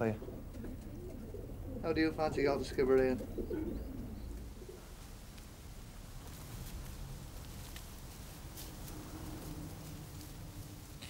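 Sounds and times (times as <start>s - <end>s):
pigeons cooing: 0.0s - 5.3s, 8.2s - 11.0s.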